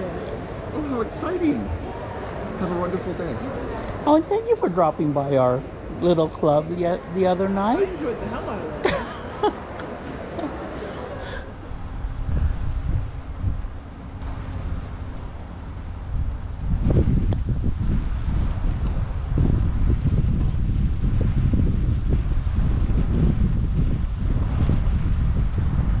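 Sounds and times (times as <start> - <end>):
wind buffeting microphone: 11.2 - 26.0.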